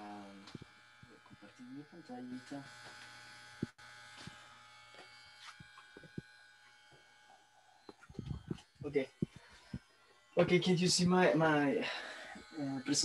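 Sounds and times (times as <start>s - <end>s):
faint electrical buzz: 0.0s - 13.0s.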